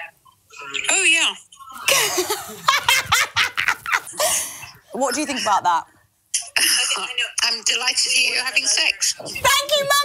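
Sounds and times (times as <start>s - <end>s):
women laughing hard: 1.9s - 4.3s.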